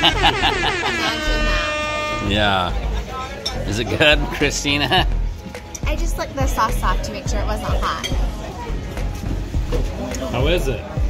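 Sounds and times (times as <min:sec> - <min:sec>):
background music: 0:00.0 - 0:11.0
diners chattering: 0:00.0 - 0:11.0.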